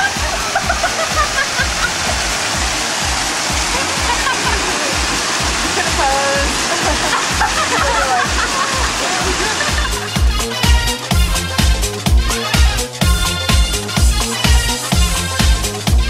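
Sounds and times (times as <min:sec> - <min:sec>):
women laughing: 0:00.0 - 0:02.2, 0:03.7 - 0:05.0, 0:05.6 - 0:10.3
dance music with steady beat: 0:00.0 - 0:16.0
waterfall rushing water: 0:00.0 - 0:16.0
women talking: 0:03.8 - 0:09.6.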